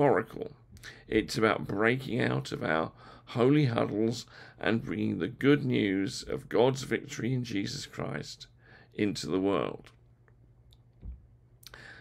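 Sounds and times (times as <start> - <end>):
low steady hum: 0.0 - 12.0
soft low thump: 11.0 - 11.3
intake of breath: 11.7 - 12.0.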